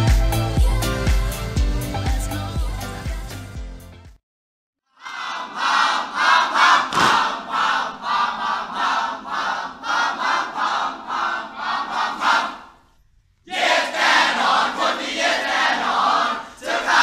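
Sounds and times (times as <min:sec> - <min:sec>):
young voices chanting in unison: 0:04.9 - 0:12.8, 0:13.5 - 0:17.0.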